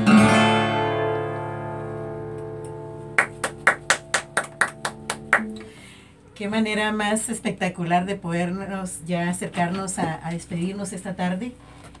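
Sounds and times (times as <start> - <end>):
acoustic guitar chord ringing: 0.0 - 6.1
hand claps: 2.6 - 5.7.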